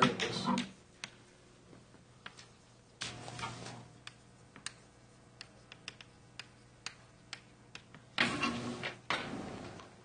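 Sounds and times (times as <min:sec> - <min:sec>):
chalk clicking on a blackboard: 0:02.2 - 0:08.1.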